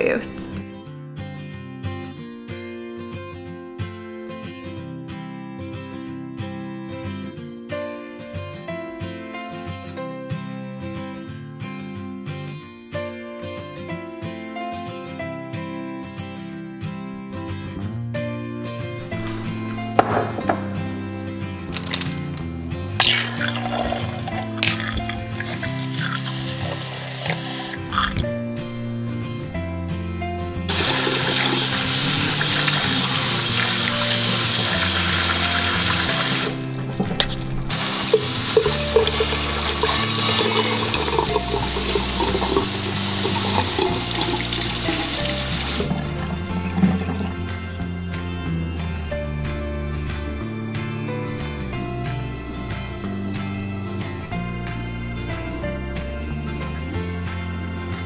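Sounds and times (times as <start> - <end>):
background music: 0.0 - 58.0
tap water running onto fruit: 23.0 - 28.2, 30.7 - 47.6.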